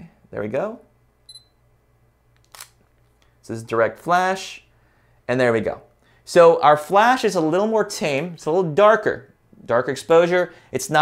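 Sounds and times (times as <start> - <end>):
camera focus beep: 1.3 - 1.6.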